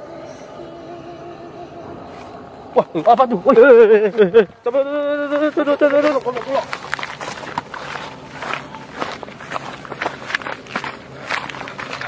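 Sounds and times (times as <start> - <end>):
rustling vegetation: 2.1 - 12.0
footsteps through grass: 2.8 - 12.0.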